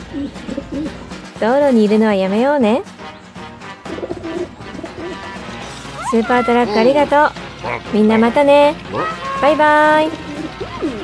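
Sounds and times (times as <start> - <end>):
pigeon cooing: 0.0 - 1.3, 3.8 - 5.4, 6.0 - 11.0
light background music: 0.0 - 11.0.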